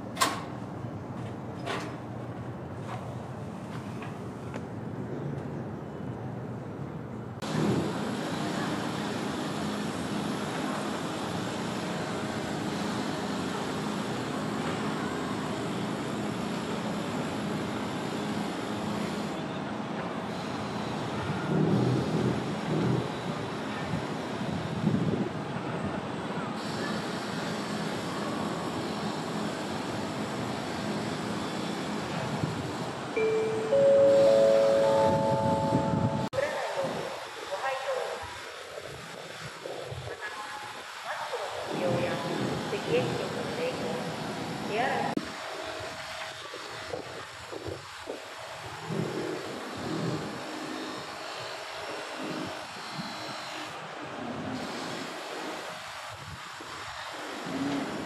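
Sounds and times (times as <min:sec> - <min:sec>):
rising four-note chime: 0:33.2 - 0:36.3.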